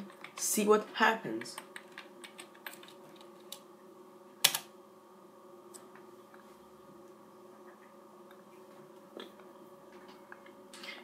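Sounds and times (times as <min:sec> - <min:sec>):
keyboard keys tapping: 0:00.0 - 0:00.4, 0:01.4 - 0:03.6.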